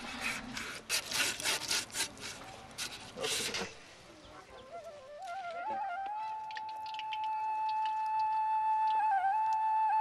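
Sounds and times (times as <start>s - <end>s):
flute holding a long note: 4.6s - 10.0s.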